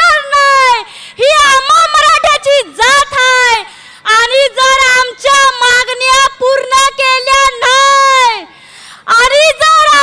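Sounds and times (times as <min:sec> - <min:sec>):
woman giving speech into microphone: 0:00.0 - 0:10.0.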